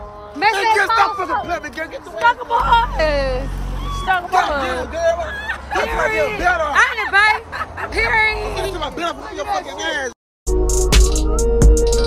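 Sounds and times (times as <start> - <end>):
vehicle low rumble: 0.0 - 10.1
people talking and laughing: 0.3 - 10.2.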